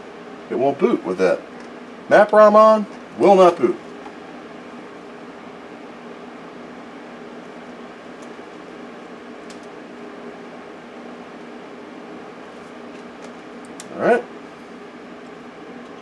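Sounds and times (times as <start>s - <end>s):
computer fan and drives whirring: 0.0s - 16.0s.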